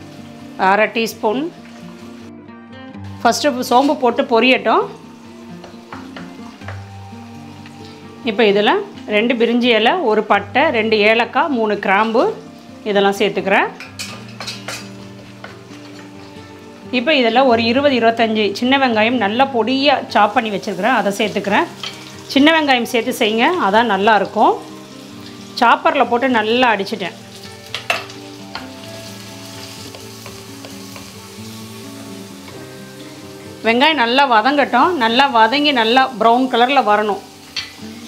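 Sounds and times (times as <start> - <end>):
seeds sizzling in hot oil: 0.0 - 2.3, 3.1 - 8.2, 19.8 - 38.0
background music: 0.0 - 38.0.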